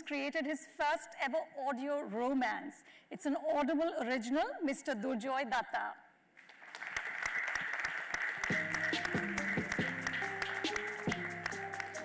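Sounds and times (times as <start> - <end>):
audience applauding: 6.4 - 12.0
music with plucked notes: 8.5 - 12.0.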